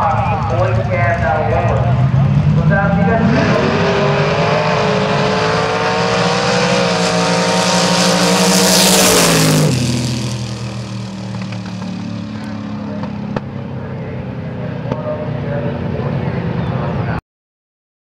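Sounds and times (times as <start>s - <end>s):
drag cars launching at full throttle: 0.0s - 17.0s.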